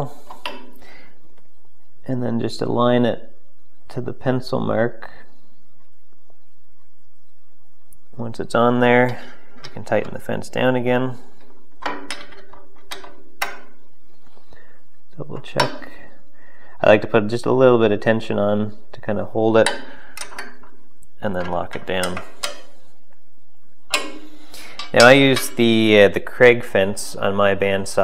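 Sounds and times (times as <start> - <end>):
saw fence clicks and knocks: 11.8 - 13.7, 23.9 - 24.2.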